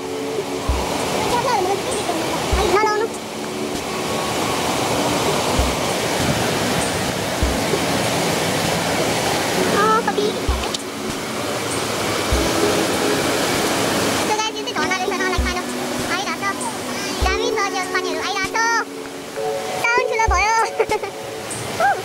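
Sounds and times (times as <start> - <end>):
background music with low beat: 0.0 - 1.6, 2.4 - 4.4, 5.3 - 8.2, 10.0 - 11.4, 12.1 - 13.9, 15.0 - 21.2
river rushing through gorge: 0.0 - 22.0.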